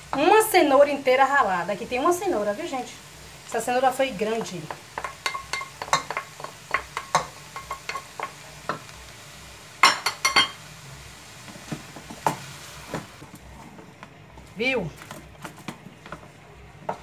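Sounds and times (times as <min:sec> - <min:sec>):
spoon stirring in metal pot: 0:04.4 - 0:08.8.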